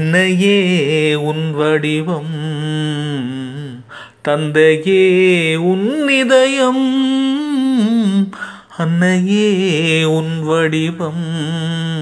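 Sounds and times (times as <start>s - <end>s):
man singing film song: 0.0s - 12.0s.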